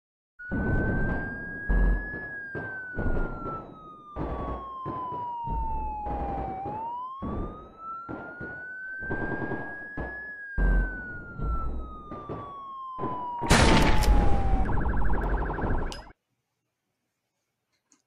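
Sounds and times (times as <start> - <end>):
wailing siren: 0.4 - 16.1.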